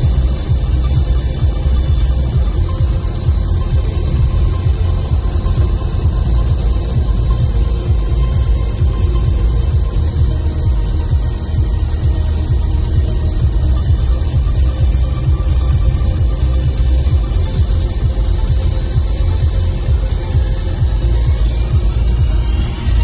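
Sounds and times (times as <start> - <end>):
bass-heavy music: 0.0 - 23.0.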